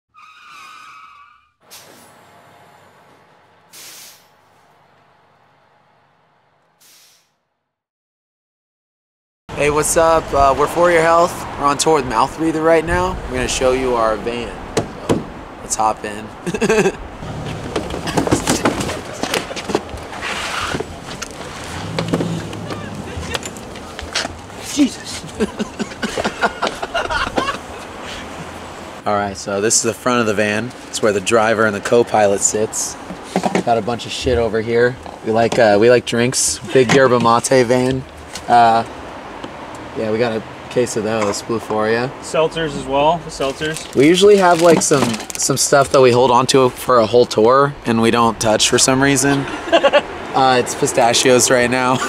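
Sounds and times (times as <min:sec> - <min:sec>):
tire screech: 0:00.1 - 0:05.6, 0:17.1 - 0:26.4
short loud hiss: 0:01.7 - 0:02.2, 0:03.7 - 0:04.4, 0:06.8 - 0:07.3
knocks and bumps in a van: 0:14.7 - 0:15.4, 0:17.2 - 0:24.6
brief scraping rush: 0:20.1 - 0:23.6.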